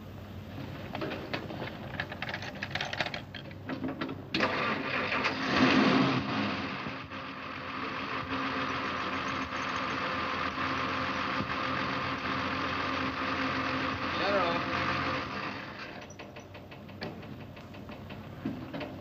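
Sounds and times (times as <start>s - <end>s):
car engine starting and idling: 3.5s - 19.0s
starter clicking: 15.4s - 19.0s.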